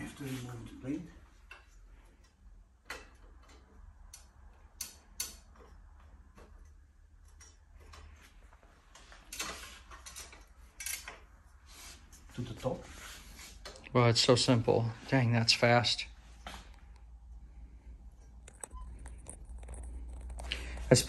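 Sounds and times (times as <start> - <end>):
metal parts clicking and tapping: 1.4 - 11.3.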